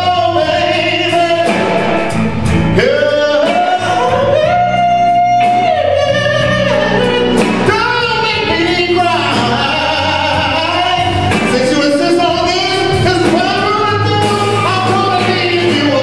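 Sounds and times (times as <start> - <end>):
band playing: 0.0 - 16.0
man singing soul: 0.0 - 16.0.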